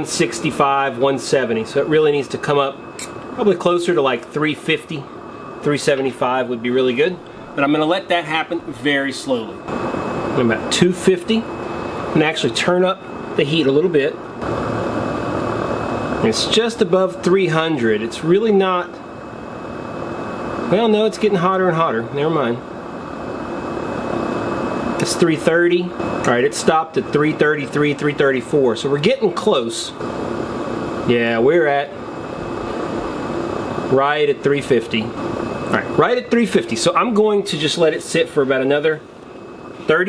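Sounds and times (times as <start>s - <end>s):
gas stove burner hissing: 0.0s - 40.0s.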